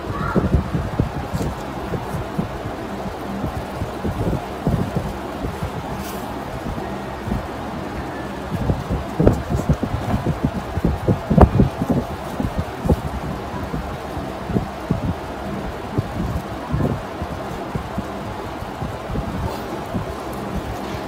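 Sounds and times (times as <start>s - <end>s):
steady low hiss: 0.0s - 21.0s.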